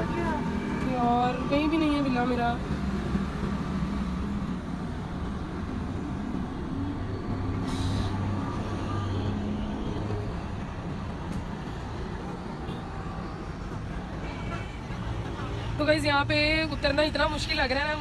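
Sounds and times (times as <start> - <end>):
traffic rumble: 0.0 - 18.0
brief hiss: 7.6 - 8.2.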